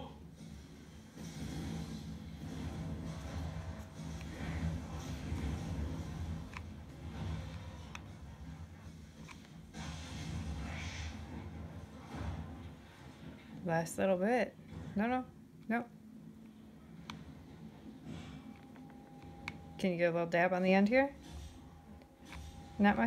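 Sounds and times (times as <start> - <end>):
low steady hum: 0.0 - 23.0.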